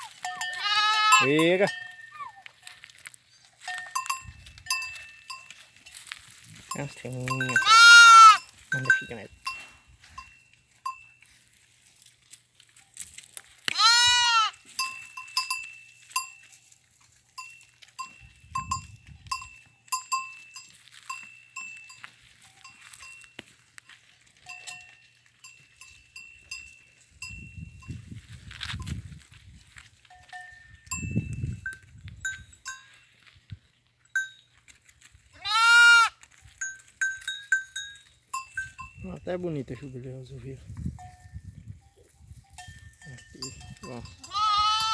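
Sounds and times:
goats bleating: 0:00.0 - 0:01.4, 0:07.5 - 0:08.5, 0:13.7 - 0:14.6, 0:35.4 - 0:36.2, 0:44.2 - 0:44.9
livestock bell clinking: 0:00.0 - 0:44.9.

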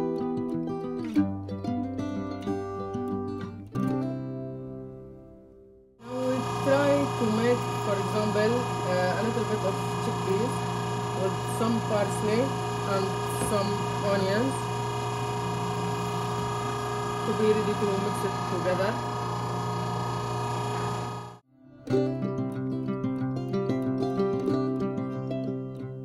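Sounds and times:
plucked-string music: 0:00.0 - 0:05.1, 0:21.6 - 0:26.0
electric meat grinder humming: 0:06.0 - 0:21.4.

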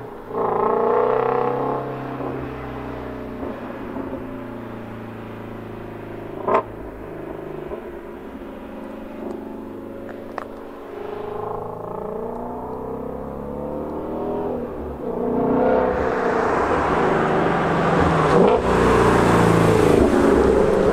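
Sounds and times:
car engine accelerating: 0:00.3 - 0:20.9.

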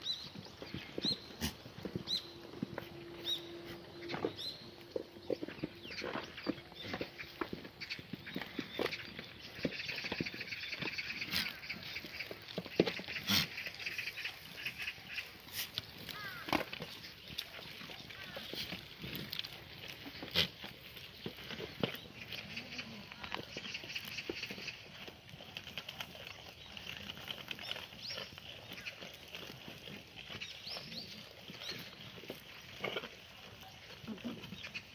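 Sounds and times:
hooves shuffling on stony ground: 0:00.0 - 0:34.9
goats chewing rustling vines: 0:00.1 - 0:34.9.

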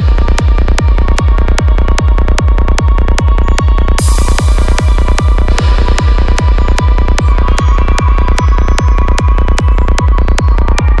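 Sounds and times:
psytrance electronic music: 0:00.0 - 0:11.0.

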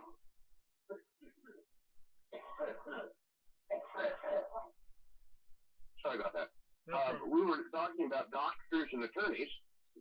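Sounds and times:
man coughing: 0:02.3 - 0:04.5.

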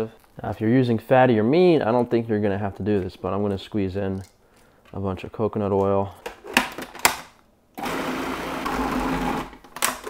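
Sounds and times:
food processor grinding: 0:07.8 - 0:09.6.

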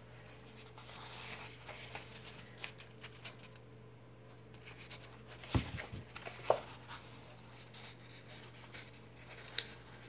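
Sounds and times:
light taps on book cover: 0:05.4 - 0:06.7.

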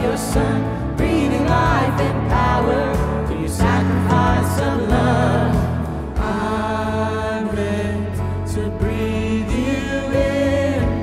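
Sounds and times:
worship band and singers: 0:00.0 - 0:11.0.

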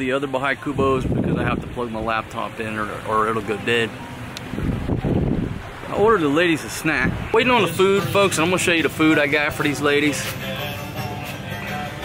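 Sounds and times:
wind buffeting microphone: 0:00.6 - 0:02.3, 0:04.4 - 0:07.4.

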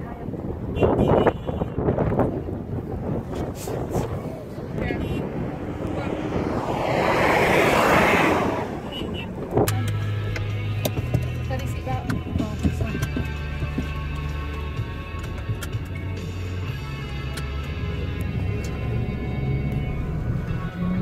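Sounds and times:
wind gust on microphone: 0:00.0 - 0:09.8
car engine running: 0:02.2 - 0:21.0.

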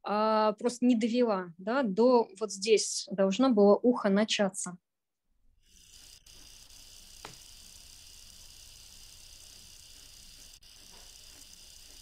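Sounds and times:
faint steady hiss: 0:05.7 - 0:12.0.

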